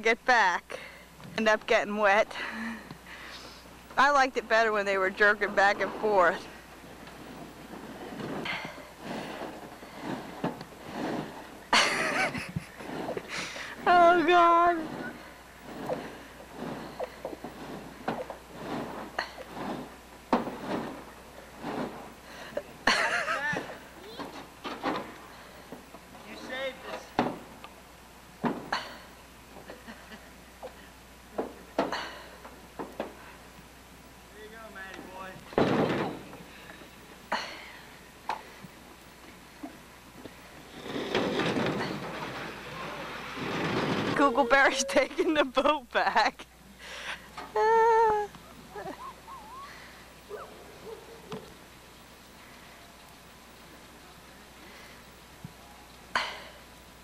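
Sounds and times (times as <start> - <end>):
light knocks and scrapes: 5.2 - 22.6, 39.6 - 44.3
person calling out or laughing: 47.6 - 50.5.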